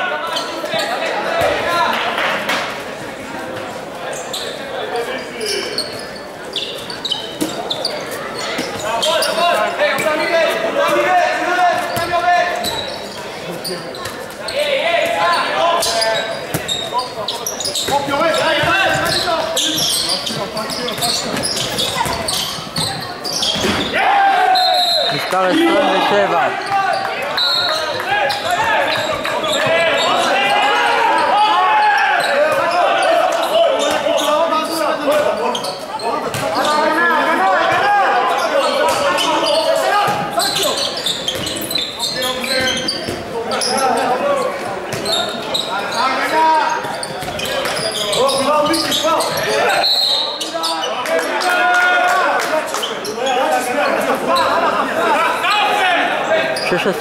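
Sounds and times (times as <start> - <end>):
players shouting: 17.7 - 35.0
ball bouncing on wooden court: 20.3 - 23.9.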